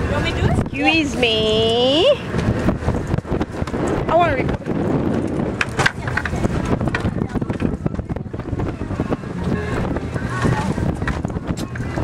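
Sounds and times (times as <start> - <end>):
boat low rumble: 0.0 - 12.0
faint voices: 0.0 - 12.0
wind buffeting microphone: 0.0 - 12.0.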